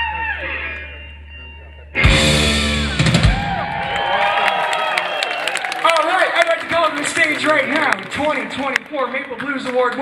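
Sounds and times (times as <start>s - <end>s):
blues band playing: 0.0s - 4.8s.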